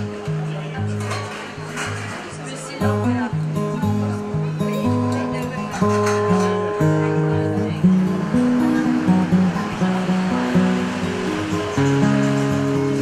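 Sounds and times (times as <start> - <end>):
instrumental background music: 0.0 - 13.0.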